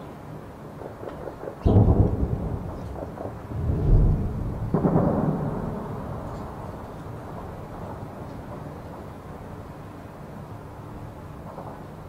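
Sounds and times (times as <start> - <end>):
distant heavy gunfire echoing: 1.7 - 8.0
booms with rumbling echo: 1.7 - 8.2.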